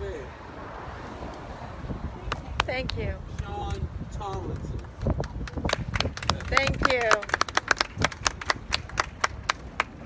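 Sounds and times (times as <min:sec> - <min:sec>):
crowd clapping: 0:04.2 - 0:10.0.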